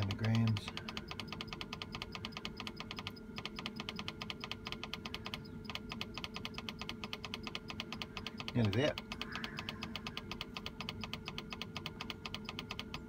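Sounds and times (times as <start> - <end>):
monitor ticking rapidly: 0.0 - 13.0.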